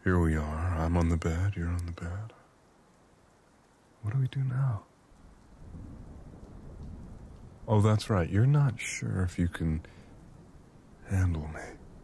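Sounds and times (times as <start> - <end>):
distant thunder rumbling: 5.2 - 12.0.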